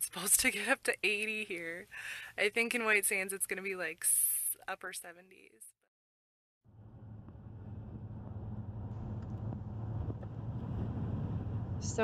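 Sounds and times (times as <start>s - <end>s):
road and engine rumble: 6.7s - 12.0s.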